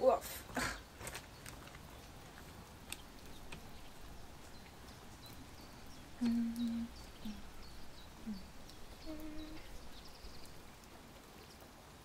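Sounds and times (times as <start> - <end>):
low steady background hiss: 0.0 - 12.0
soft clicks and ticks: 1.1 - 11.7.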